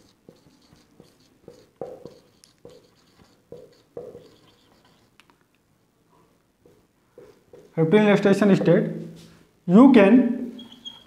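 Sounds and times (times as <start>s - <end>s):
marker squeaking on whiteboard: 0.0s - 5.3s, 6.6s - 7.8s, 10.6s - 11.0s.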